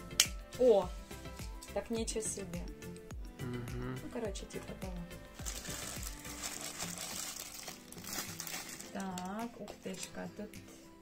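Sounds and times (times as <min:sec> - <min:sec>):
plastic wrapping crinkling: 0:05.4 - 0:10.1.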